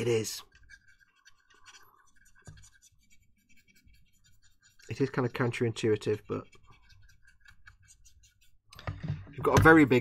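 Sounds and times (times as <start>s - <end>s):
paintbrush bristles scratching: 0.0s - 10.0s.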